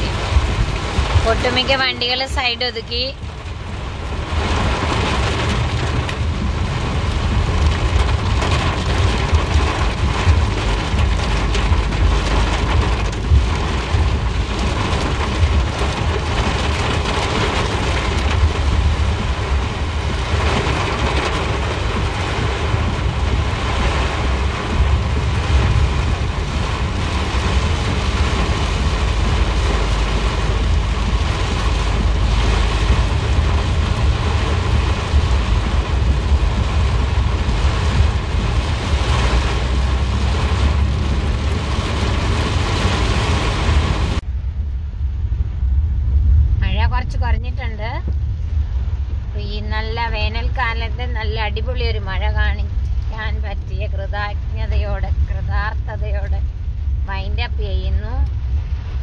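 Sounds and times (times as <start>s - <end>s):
heavy rain on car roof: 0.0s - 59.0s.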